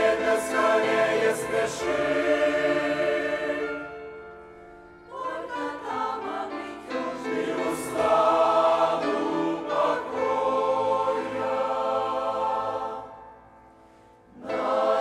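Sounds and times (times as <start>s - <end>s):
mixed choir singing a hymn: 0.0s - 4.2s, 5.0s - 13.4s, 14.3s - 15.0s.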